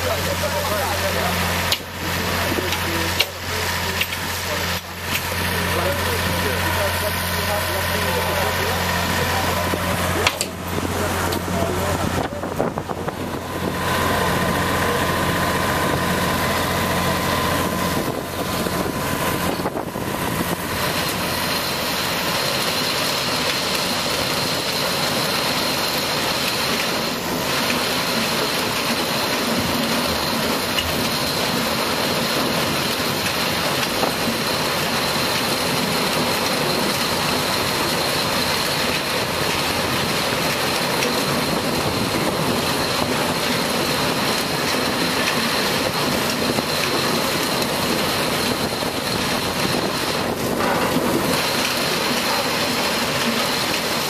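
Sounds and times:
diesel machinery running: 0.0s - 54.0s.

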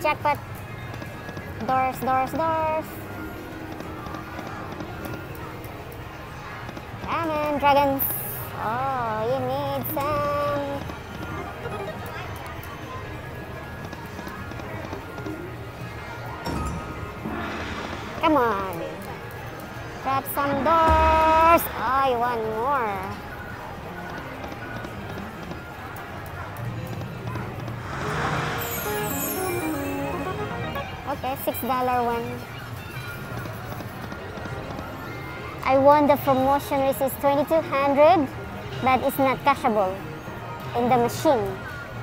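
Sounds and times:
casino background din: 0.0s - 42.0s
electronic slot machine music: 28.2s - 31.3s.

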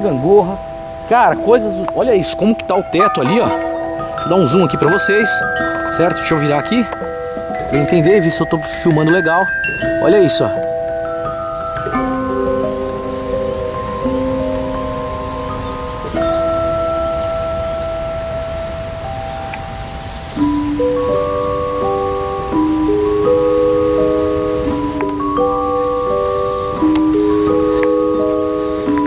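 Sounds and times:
slow bell-like melody: 0.0s - 29.0s.

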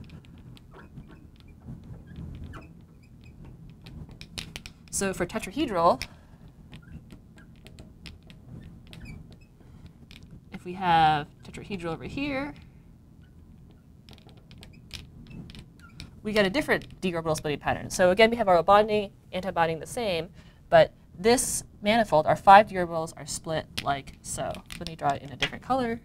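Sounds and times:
marker squeaking on glass: 0.1s - 4.1s, 6.7s - 7.8s, 8.5s - 9.6s, 13.2s - 13.9s, 14.5s - 16.2s.

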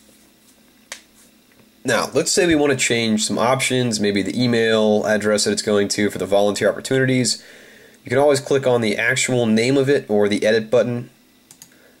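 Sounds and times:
man speaking: 1.8s - 7.4s, 8.1s - 11.2s
sharp click: 11.5s - 11.7s.

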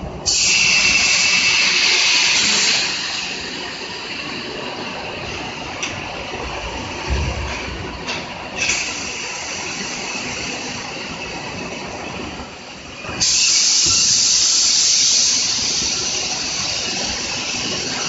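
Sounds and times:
conveying line hissing: 0.2s - 5.6s, 13.1s - 18.0s
low thump: 7.0s - 8.0s.

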